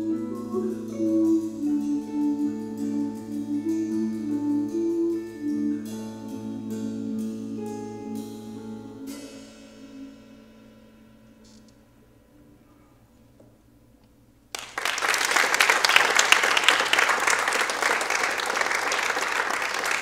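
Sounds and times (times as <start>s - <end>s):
jazz guitar and drums: 0.0s - 11.7s
cymbal ringing: 0.0s - 13.0s.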